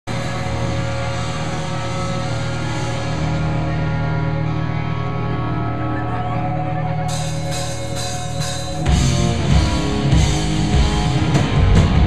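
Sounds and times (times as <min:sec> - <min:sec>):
electric guitars droning: 0:00.1 - 0:12.0.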